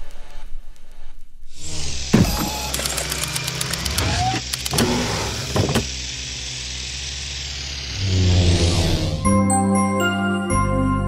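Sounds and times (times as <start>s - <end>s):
drone motor whirring: 1.5s - 9.4s
mechanical clicks and knocks: 2.2s - 5.9s.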